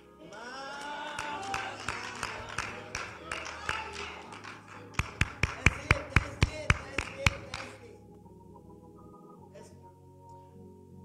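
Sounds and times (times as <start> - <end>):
faint background music: 0.0 - 11.0
hands clapping: 0.3 - 7.8.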